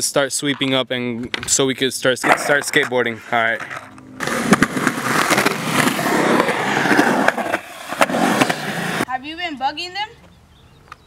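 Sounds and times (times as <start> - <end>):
skateboard wheels rolling on concrete: 0.0 - 9.1.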